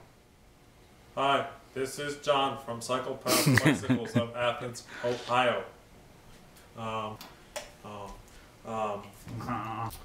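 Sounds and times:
man chuckling: 3.3s - 4.5s, 9.3s - 9.9s.

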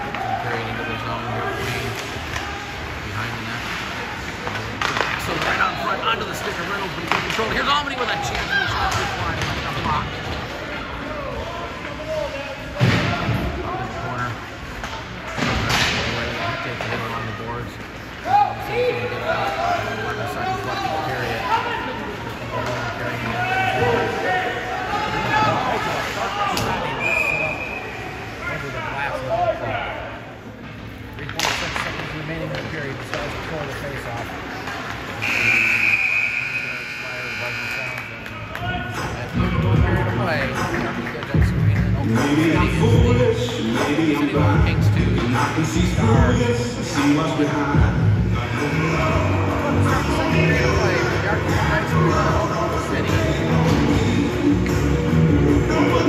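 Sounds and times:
hockey sticks and puck banging: 1.5s - 12.0s, 12.6s - 13.7s, 14.4s - 17.0s, 31.2s - 35.6s
scoreboard horn: 35.2s - 38.0s.

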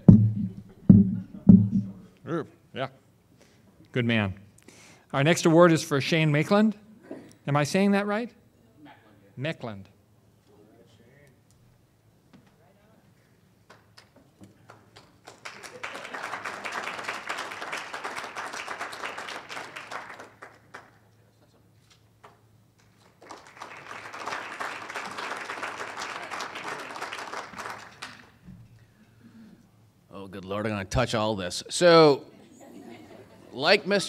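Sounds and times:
audience applauding: 14.7s - 21.0s, 23.0s - 28.4s.

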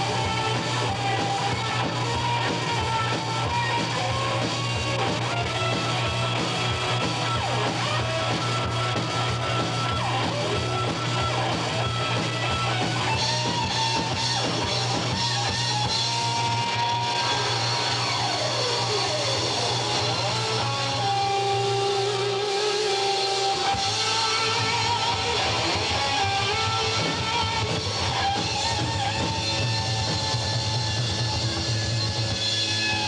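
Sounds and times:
live rock band playing: 0.0s - 33.0s.

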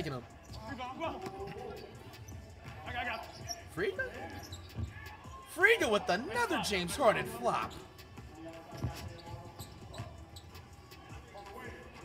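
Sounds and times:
faint background voices: 7.2s - 12.0s.

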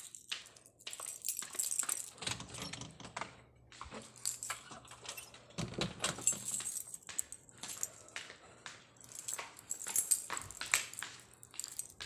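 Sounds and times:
keys jangling and clicking: 0.0s - 3.2s, 4.0s - 8.4s, 9.0s - 12.0s.

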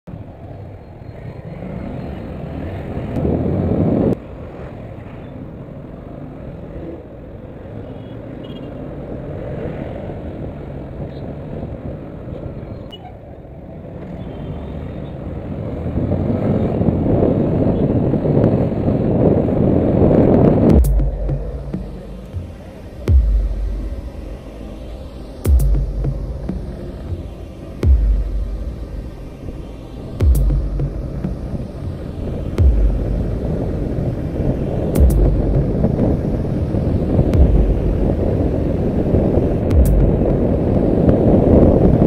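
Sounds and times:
traffic: 0.0s - 42.0s
wind rushing over microphone: 1.6s - 7.8s, 14.9s - 42.0s.

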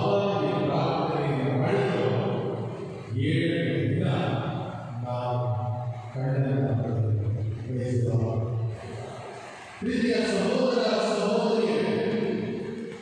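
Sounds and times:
man chanting a prayer: 0.0s - 8.6s, 9.8s - 12.3s.

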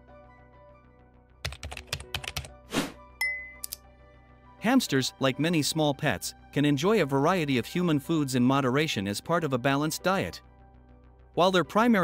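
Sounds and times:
background music: 0.0s - 12.0s
short swish: 2.7s - 3.0s.

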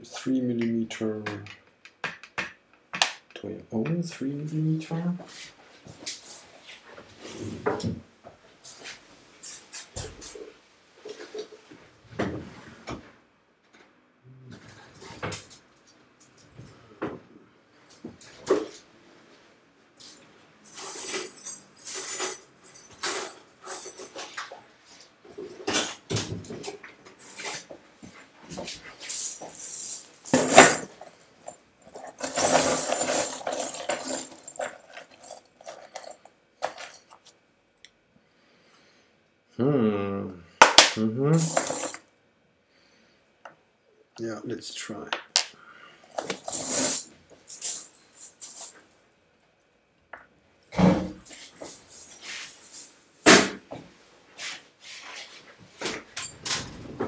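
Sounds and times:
objects knocking and clattering: 30.1s - 31.2s.

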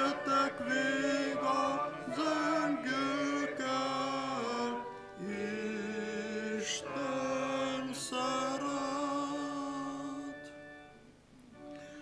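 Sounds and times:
congregation singing a hymn: 0.0s - 10.5s
keyboard accompaniment: 0.0s - 12.0s.

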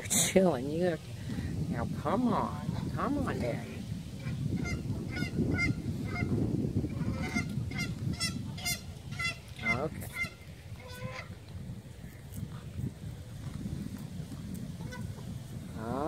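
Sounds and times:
swans honking: 3.5s - 11.5s, 14.8s - 15.3s.

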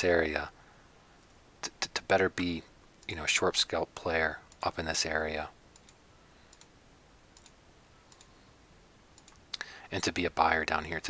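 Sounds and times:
low room hiss: 0.0s - 11.0s
computer mouse clicks: 5.7s - 6.8s, 7.4s - 8.4s, 9.2s - 9.6s.

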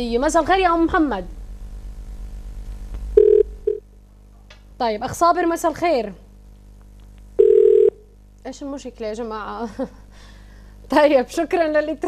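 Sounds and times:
telephone line hum: 2.6s - 3.9s, 7.0s - 8.2s
telephone beeps: 3.2s - 3.8s, 7.4s - 8.0s.

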